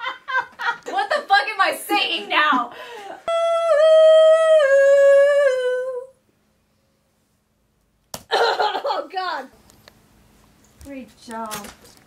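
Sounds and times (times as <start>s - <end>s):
woman's voice: 0.9s - 2.8s, 10.8s - 11.8s.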